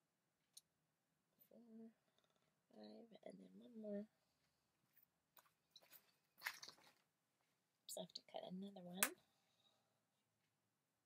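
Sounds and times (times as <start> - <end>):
faint rustling of craft materials: 0.1 - 11.0.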